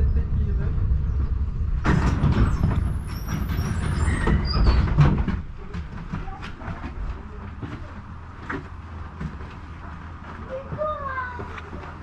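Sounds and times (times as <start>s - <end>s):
tram rumbling on track: 0.0s - 12.0s
wheels clattering on rails: 0.0s - 12.0s.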